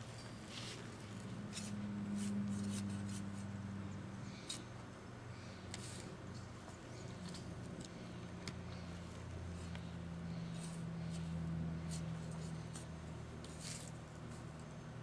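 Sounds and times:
steady low hum: 0:00.0 - 0:15.0
garden fork digging into soil: 0:00.5 - 0:03.5, 0:10.4 - 0:14.5.

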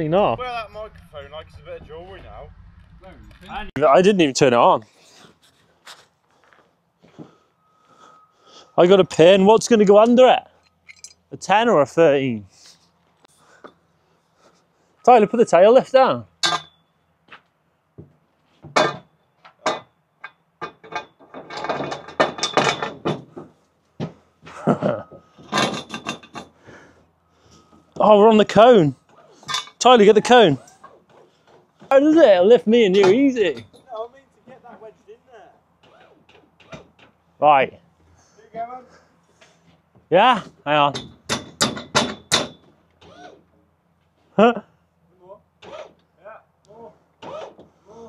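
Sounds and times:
scaffold metal clanking: 0:16.4 - 0:17.0, 0:18.7 - 0:26.6, 0:40.8 - 0:42.9.

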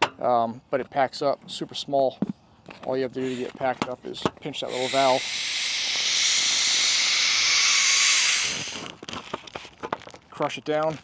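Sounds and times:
air hissing out of valve: 0:04.6 - 0:09.0
plastic clicks and crinkles: 0:08.8 - 0:11.0.

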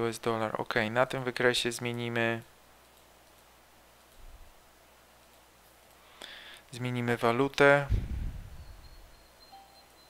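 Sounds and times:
short tone: 0:08.5 - 0:10.0
thin high tone: 0:08.6 - 0:10.0.

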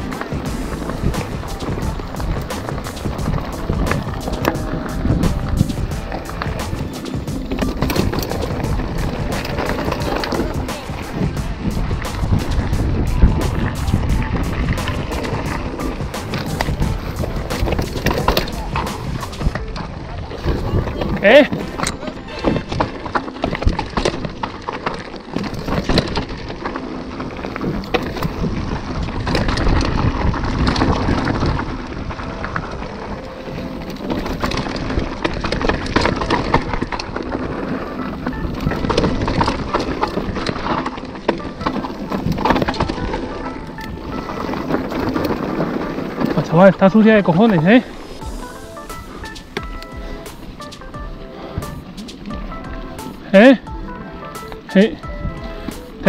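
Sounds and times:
wind on microphone: 0:00.0 - 0:24.7, 0:27.2 - 0:54.2, 0:55.0 - 0:56.0
bike rattling over stones: 0:00.0 - 0:56.0
bike tyres rumbling on rocky trail: 0:00.0 - 0:56.0.

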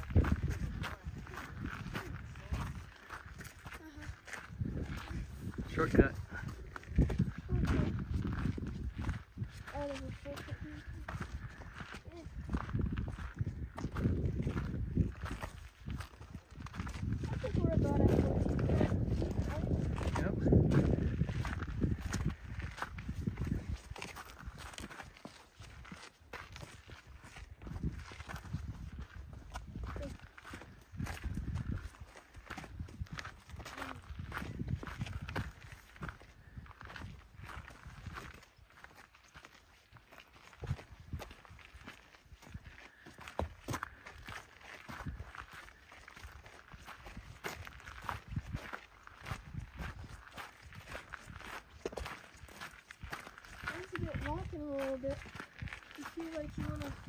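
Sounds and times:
footsteps on gravel: 0:00.0 - 0:57.0.

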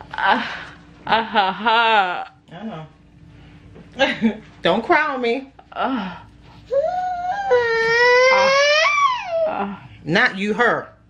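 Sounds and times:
high-pitched crying wail: 0:06.7 - 0:09.8.

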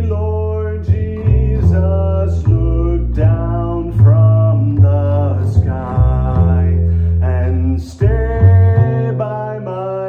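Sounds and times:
man singing: 0:00.0 - 0:10.0
plucked double bass: 0:00.0 - 0:10.0.

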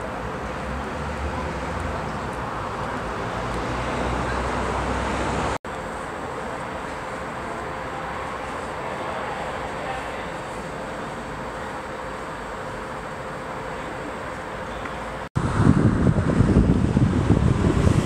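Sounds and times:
light steady background noise: 0:00.0 - 0:15.3
distant traffic rumble: 0:00.0 - 0:18.0.

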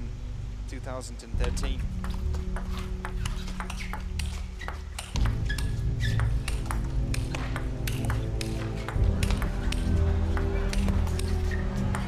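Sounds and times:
background music with low tones: 0:00.0 - 0:12.0
table tennis ball clicks: 0:02.0 - 0:09.9.

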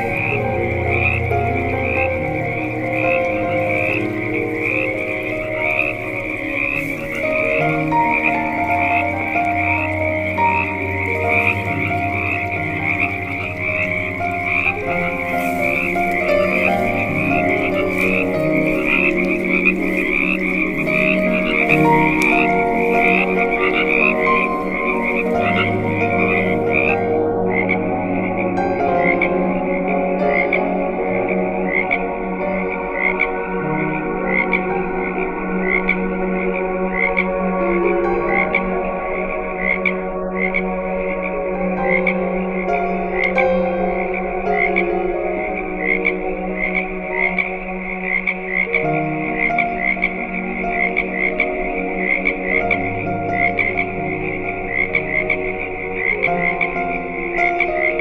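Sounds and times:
frogs and crickets chirping: 0:00.0 - 0:58.0
low drone: 0:00.0 - 0:58.0
slow ambient music: 0:00.0 - 0:58.0.

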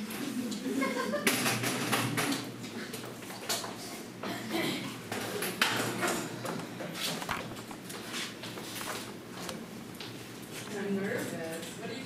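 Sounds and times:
footsteps: 0:06.2 - 0:11.9.

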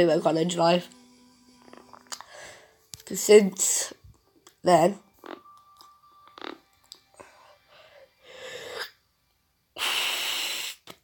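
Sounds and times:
sharp in-breath: 0:02.2 - 0:02.8, 0:09.8 - 0:10.9
person breathing softly: 0:02.2 - 0:02.9, 0:07.2 - 0:09.0.

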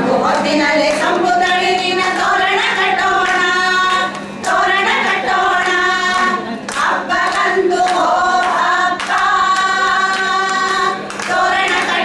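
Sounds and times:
women singing in unison: 0:00.0 - 0:12.0.

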